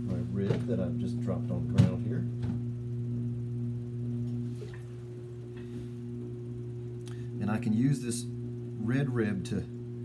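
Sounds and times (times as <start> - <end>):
potter's wheel humming: 0.0 - 10.0.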